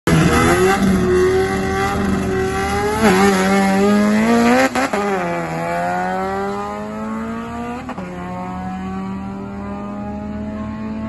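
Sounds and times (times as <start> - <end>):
car engine revving: 0.1 - 11.0.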